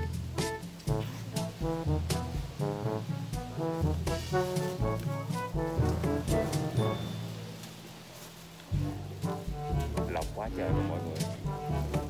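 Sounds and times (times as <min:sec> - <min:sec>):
quick melody over steady beat: 0:00.0 - 0:07.6, 0:08.7 - 0:12.0.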